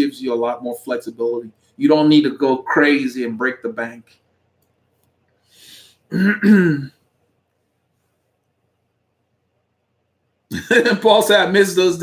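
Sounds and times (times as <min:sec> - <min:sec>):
man clearing his throat: 0:06.1 - 0:07.0.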